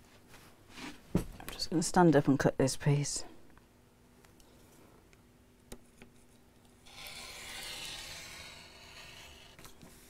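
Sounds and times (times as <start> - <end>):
rotary cutter rasping through fabric: 6.8 - 9.6.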